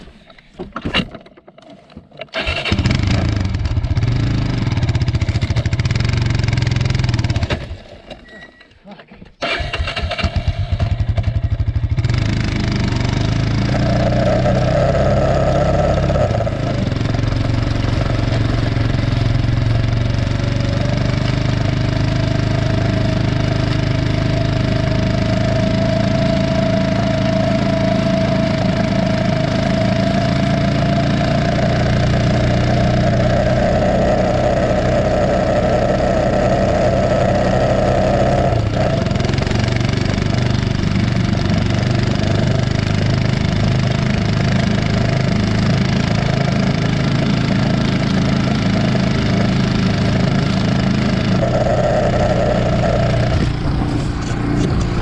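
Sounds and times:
vehicle engine running: 0:02.4 - 0:07.8, 0:09.9 - 0:55.0
drag scraping over gravel: 0:46.2 - 0:55.0.

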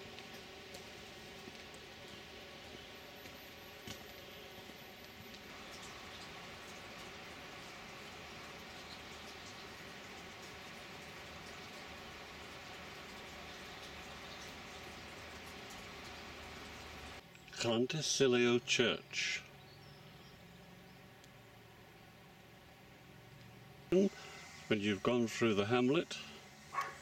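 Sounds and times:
faint outdoor background hiss: 0:00.0 - 0:27.0.

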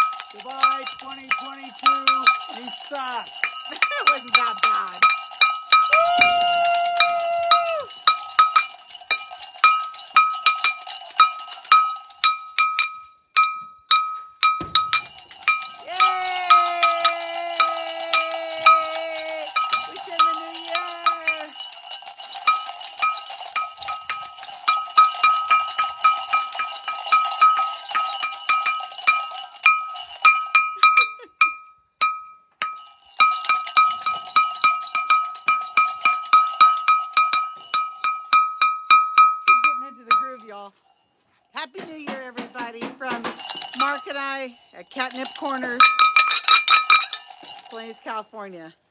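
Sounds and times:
bell ringing rhythmically: 0:00.0 - 0:48.7.

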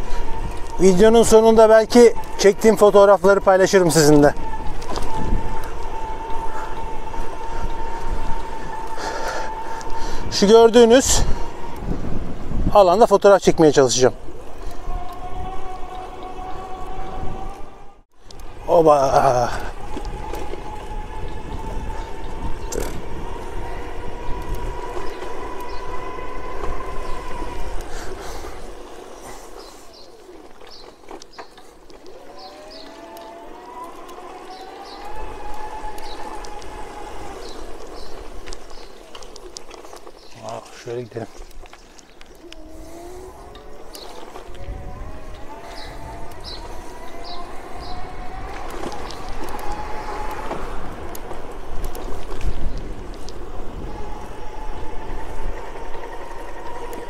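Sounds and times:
electric motor whining: 0:00.0 - 0:12.8, 0:14.1 - 0:40.9, 0:41.5 - 0:57.0
wind on microphone: 0:00.0 - 0:57.0.

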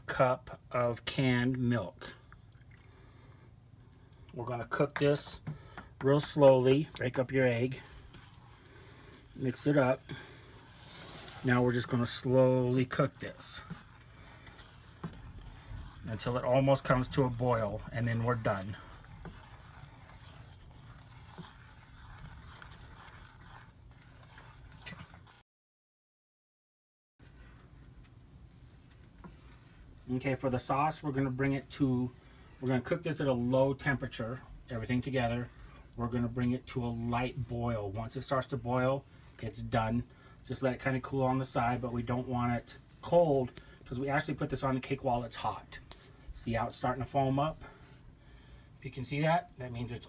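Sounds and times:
wooden spoon scraping a saucepan: 0:03.9 - 0:25.4, 0:27.2 - 0:50.0
milk pouring into saucepan: 0:05.6 - 0:25.4.

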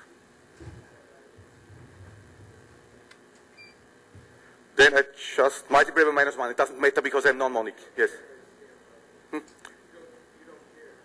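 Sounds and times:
low hiss and rumble: 0:00.0 - 0:03.2.

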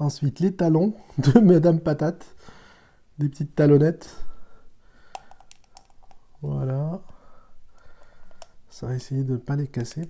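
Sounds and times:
plastic toy parts clicking: 0:05.1 - 0:06.2.

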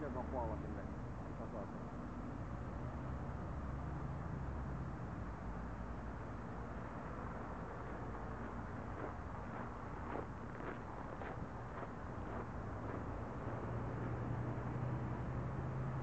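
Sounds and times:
low engine hum: 0:00.0 - 0:16.0.

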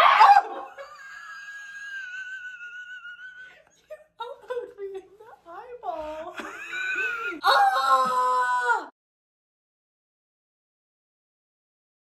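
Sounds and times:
person squealing high-pitched: 0:07.4 - 0:08.9.

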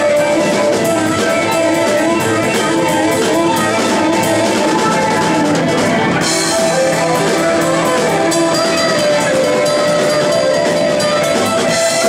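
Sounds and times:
live blues band playing: 0:00.0 - 0:12.0.

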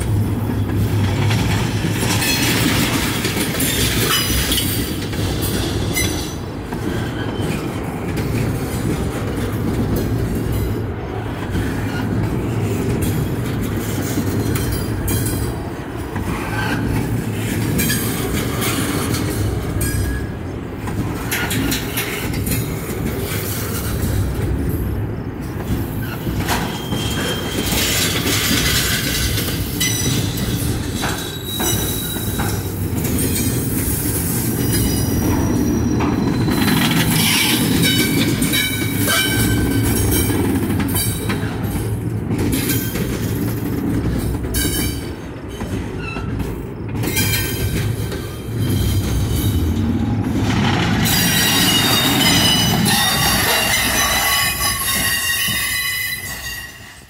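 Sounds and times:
train wheels rumbling on rail: 0:00.0 - 0:57.0
wheel flange squeal: 0:26.0 - 0:28.0, 0:51.1 - 0:57.0.

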